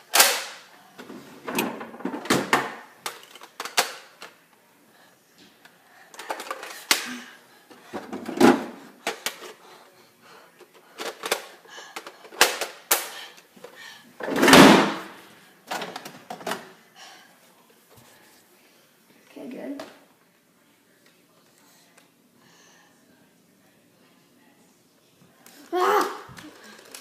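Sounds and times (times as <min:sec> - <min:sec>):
plastic toy blasters clicking and clattering: 0:03.0 - 0:04.4, 0:06.1 - 0:07.1, 0:26.4 - 0:27.0.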